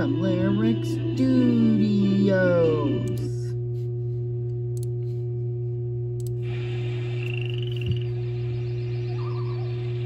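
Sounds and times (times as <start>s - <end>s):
low electrical hum: 0.0s - 10.0s
frogs croaking: 7.1s - 10.0s.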